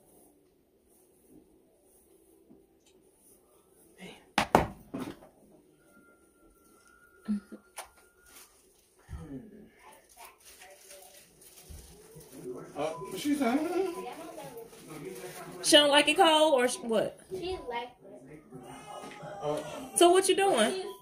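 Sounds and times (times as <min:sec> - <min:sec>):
indistinct voices: 0:18.3 - 0:21.0.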